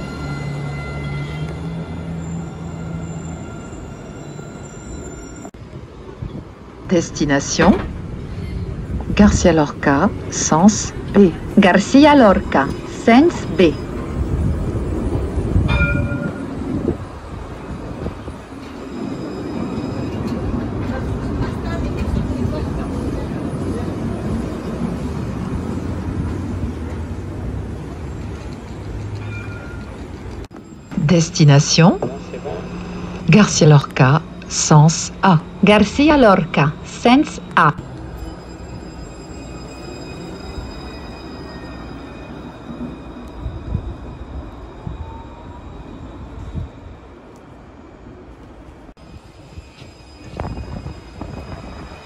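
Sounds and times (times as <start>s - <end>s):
tram beep: 0.0s - 52.0s
tram motors and wheels humming: 0.0s - 52.0s.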